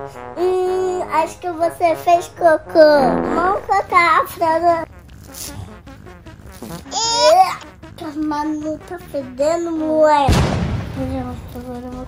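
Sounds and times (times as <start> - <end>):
fabric rasping rip: 5.0 - 7.8.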